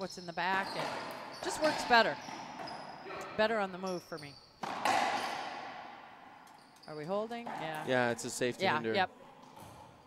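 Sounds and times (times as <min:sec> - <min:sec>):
racquetball hit echoing in court: 0:00.6 - 0:03.5, 0:04.6 - 0:06.8.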